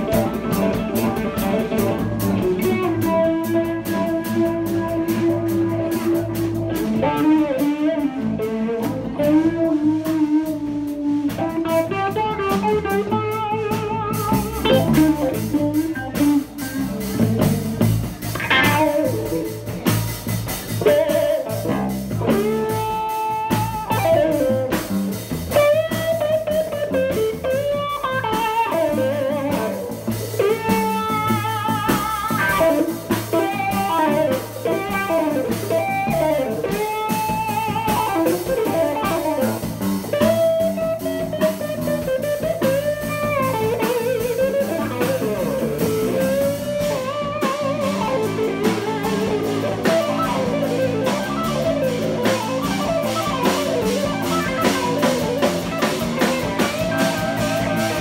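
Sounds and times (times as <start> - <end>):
drum kit: 0.0 - 58.0
electric bass: 0.0 - 58.0
electric guitar lead melody: 0.0 - 58.0.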